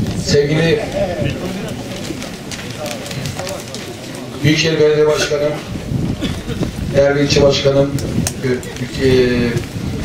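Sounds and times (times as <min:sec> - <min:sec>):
people talking outdoors: 0:00.0 - 0:10.0.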